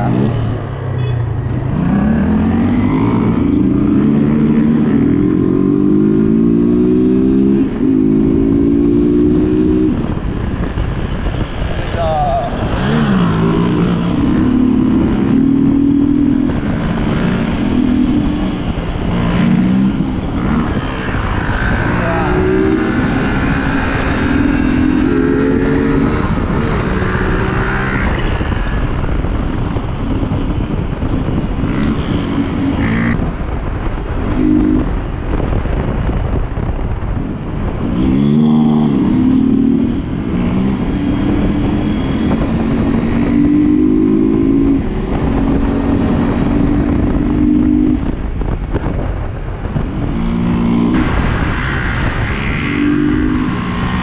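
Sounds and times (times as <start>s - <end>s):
motorcycle engine accelerating: 0.0s - 54.0s
motorcycle engines riding: 0.0s - 54.0s.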